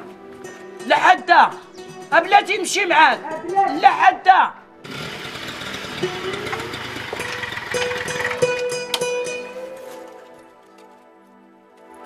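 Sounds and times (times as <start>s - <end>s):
moped engine running: 4.8s - 9.5s.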